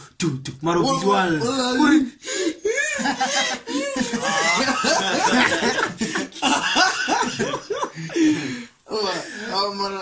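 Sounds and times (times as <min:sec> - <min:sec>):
young men laughing hard: 0:02.4 - 0:08.6.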